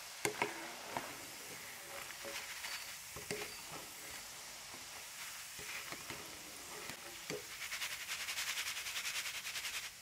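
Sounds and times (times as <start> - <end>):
food deep-frying in oil: 0.0 - 10.0.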